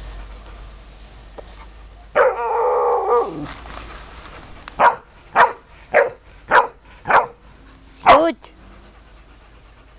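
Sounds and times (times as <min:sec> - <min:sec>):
dog barking: 0:04.8 - 0:07.4.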